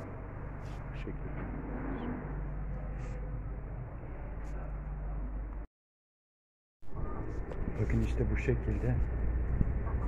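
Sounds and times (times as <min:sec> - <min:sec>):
low mechanical hum: 0:00.0 - 0:05.7, 0:06.9 - 0:10.0.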